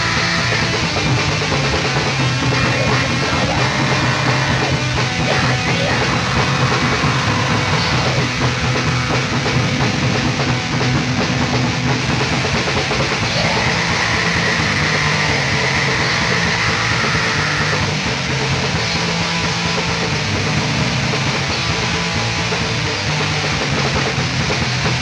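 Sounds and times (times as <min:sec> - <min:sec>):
black metal band playing: 0:00.0 - 0:25.0.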